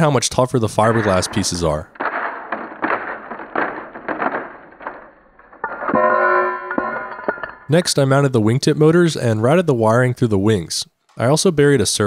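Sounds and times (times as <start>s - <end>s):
hammer clattering on concrete: 0.9s - 7.8s
hammer crushing plastic pieces: 1.0s - 7.7s.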